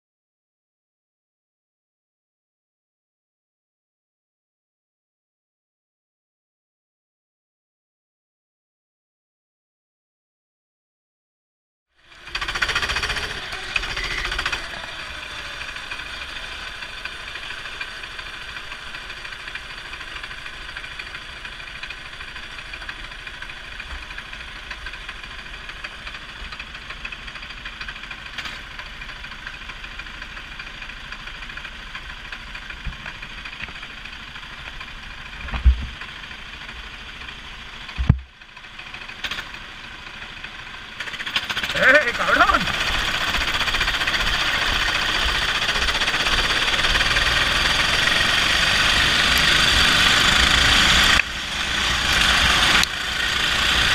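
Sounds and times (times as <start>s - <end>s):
kart engines idling: 12.0s - 53.9s.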